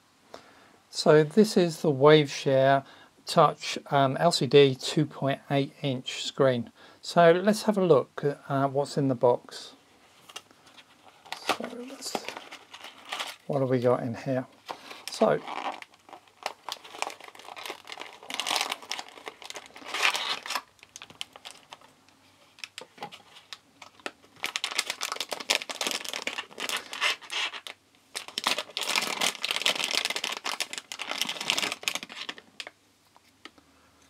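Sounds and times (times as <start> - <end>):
plastic bag crinkling: 10.8 - 13.6, 14.6 - 32.8.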